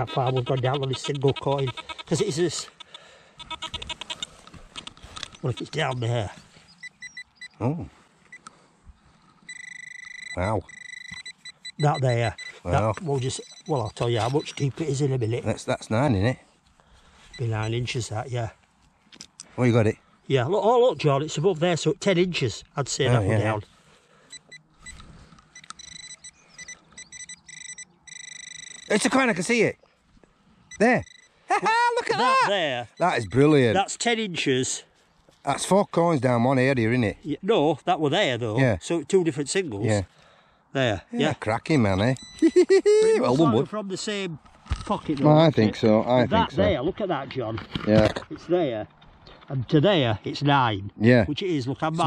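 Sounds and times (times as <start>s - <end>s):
pinpointer probe beeping: 0.0s - 7.6s, 8.3s - 8.5s, 9.5s - 15.0s, 24.3s - 29.2s, 30.7s - 31.4s, 42.1s - 43.6s
metal detector pulsing tone: 3.4s - 7.7s, 9.5s - 15.2s, 24.3s - 29.4s, 30.7s - 31.4s, 32.9s - 33.6s, 42.1s - 43.6s.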